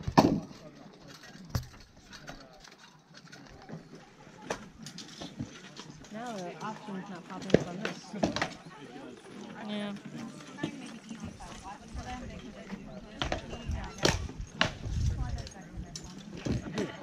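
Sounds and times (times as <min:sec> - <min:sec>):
spectators talking: 0:00.0 - 0:17.0.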